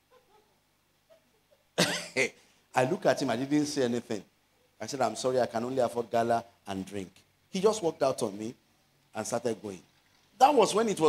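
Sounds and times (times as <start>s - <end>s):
man coughing: 1.8s - 2.3s.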